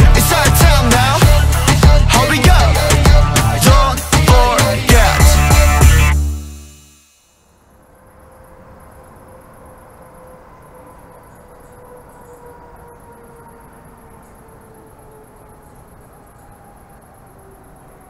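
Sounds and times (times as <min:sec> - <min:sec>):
insects chirping: 0:00.0 - 0:18.0
distant traffic rumble: 0:07.7 - 0:18.0.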